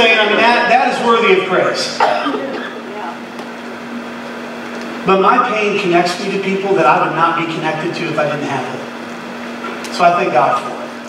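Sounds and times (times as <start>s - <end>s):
room noise: 0.0s - 11.0s
steady low hum: 0.0s - 11.0s.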